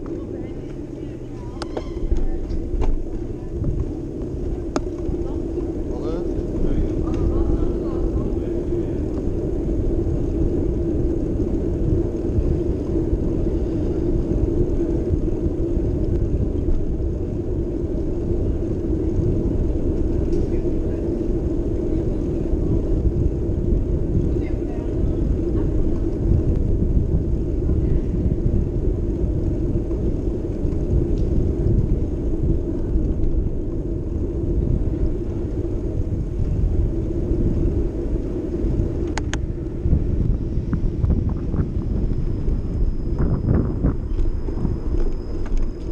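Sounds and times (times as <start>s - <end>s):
muffled wind rumble: 0.0s - 45.9s
rolling noise: 0.0s - 45.9s.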